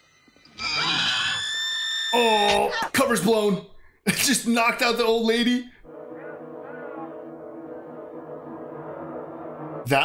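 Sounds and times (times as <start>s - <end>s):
high-pitched steady scream: 0.5s - 2.4s.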